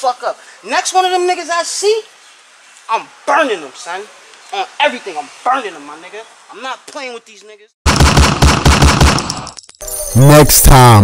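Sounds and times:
rapid automatic gunfire: 0:07.9 - 0:09.5.

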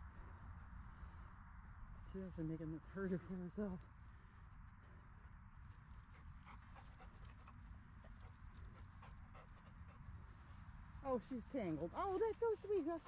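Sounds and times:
dog moving and sniffing on grass: 0:05.6 - 0:13.0.

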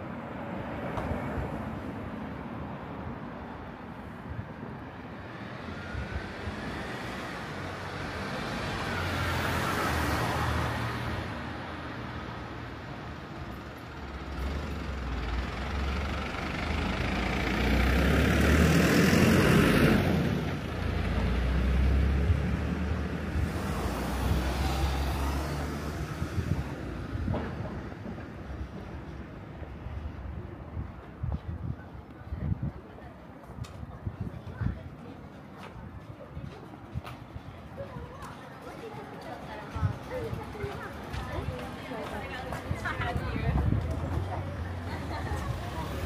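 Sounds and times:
trucks and vans driving past: 0:00.0 - 0:46.0.

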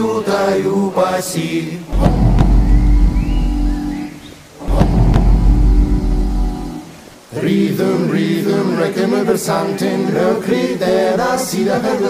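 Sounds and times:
deep bass drum booms: 0:01.9 - 0:06.7
low sustained musical tone: 0:02.2 - 0:04.3.

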